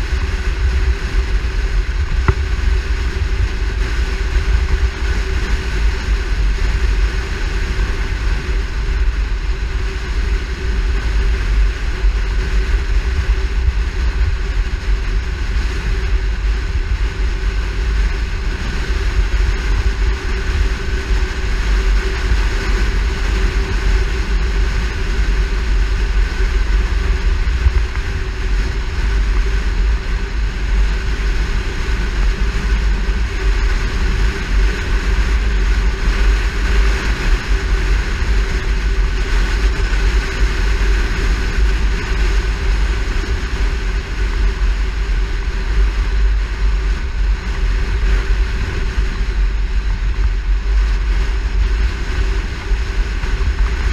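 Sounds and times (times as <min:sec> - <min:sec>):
car road and engine hum: 0:00.0 - 0:53.9
wind buffeting microphone: 0:00.0 - 0:53.9.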